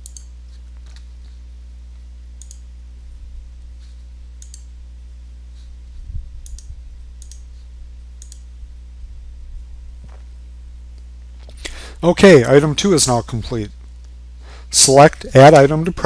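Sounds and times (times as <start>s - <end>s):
computer mouse clicks: 0.0s - 0.3s, 2.4s - 2.6s, 4.4s - 4.7s, 6.4s - 7.5s, 8.2s - 8.4s
low electrical hum: 0.0s - 16.0s.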